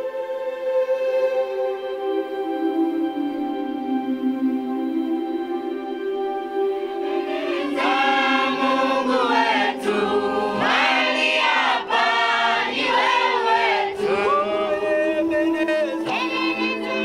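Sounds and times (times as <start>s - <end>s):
sustained chord: 0.0s - 17.0s
choir singing: 6.8s - 17.0s.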